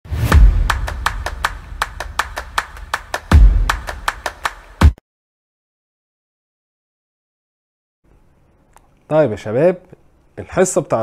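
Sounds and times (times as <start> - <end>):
deep bass hits: 0.1 - 4.2.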